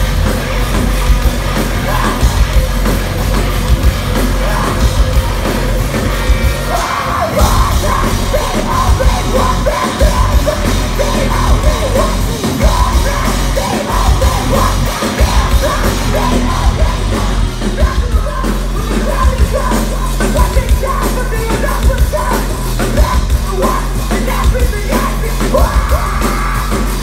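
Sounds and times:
live rock band: 0.0s - 27.0s
shouted lead vocal: 1.6s - 2.8s, 4.1s - 5.5s, 6.2s - 27.0s.

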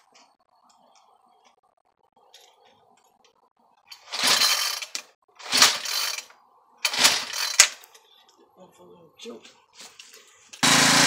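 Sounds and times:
engine cranking: 3.9s - 7.9s
recoil starter rasping whirr: 10.6s - 11.0s.

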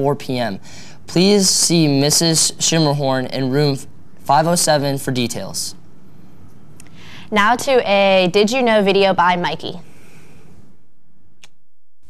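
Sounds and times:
low room hum: 0.0s - 11.9s.

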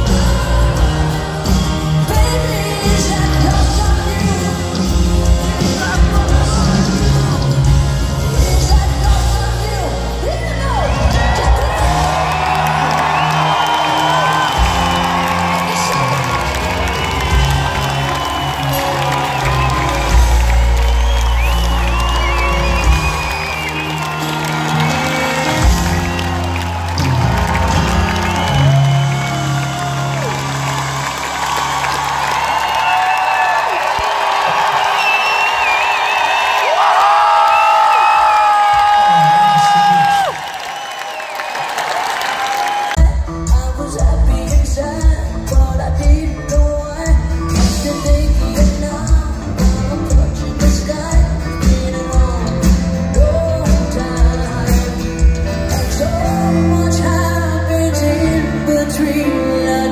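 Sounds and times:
audience cheering and whooping: 0.0s - 7.4s, 10.3s - 43.0s
live pop-rock band playing: 0.0s - 36.7s, 41.7s - 59.9s.

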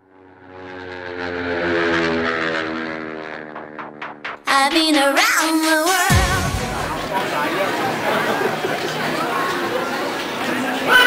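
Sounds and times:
sustained electronic chord: 0.2s - 7.7s.

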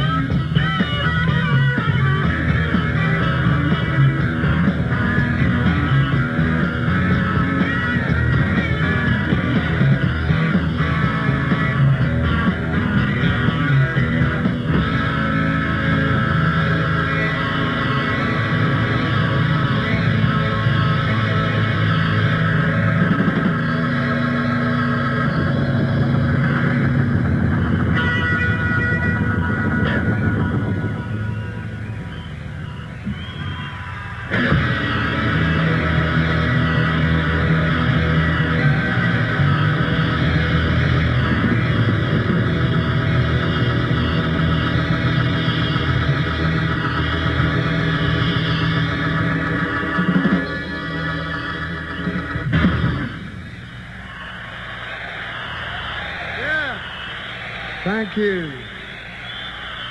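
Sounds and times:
live rock band playing: 0.0s - 59.8s
electric guitar: 0.0s - 59.9s.

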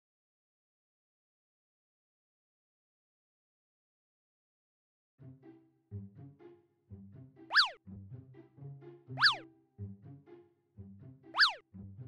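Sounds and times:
bouncy cartoon music: 5.2s - 12.0s
whistle-like cartoon swoop: 7.5s - 7.8s, 9.2s - 9.5s, 11.3s - 11.6s.

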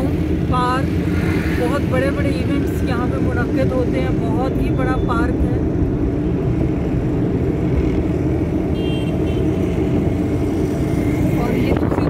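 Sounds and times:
vehicle engine and tyre noise: 0.0s - 12.0s.

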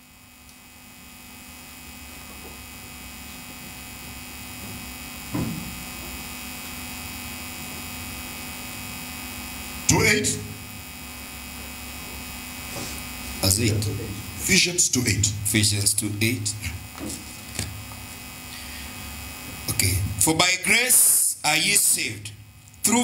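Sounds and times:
electrical mains hum: 0.0s - 23.0s
person speaking: 9.9s - 10.7s, 13.3s - 17.7s, 19.6s - 23.0s.

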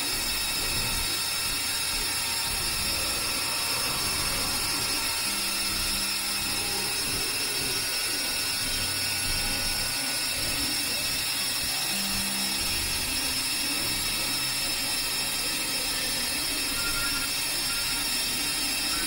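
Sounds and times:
synthesizer noise drone: 0.0s - 19.0s.

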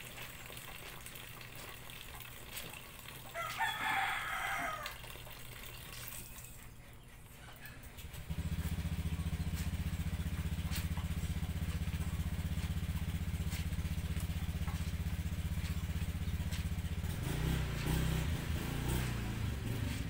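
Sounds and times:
motorcycle engine starting and idling: 0.0s - 20.0s.

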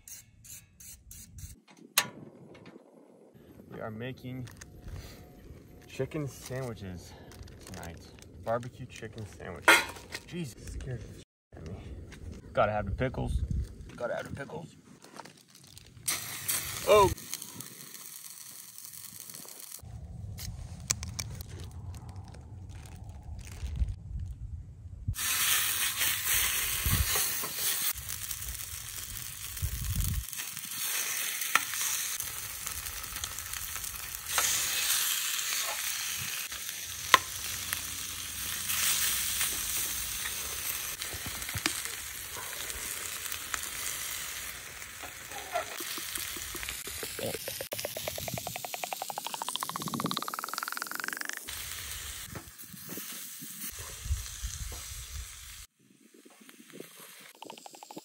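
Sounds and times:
meat sizzling in a pan: 16.1s - 19.8s, 25.1s - 49.4s, 51.5s - 57.9s
tone rising in pitch: 46.4s - 51.4s.

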